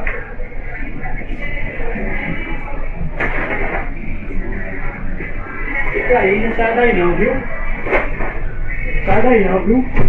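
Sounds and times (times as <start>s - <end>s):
muffled shop ambience: 0.0s - 10.0s.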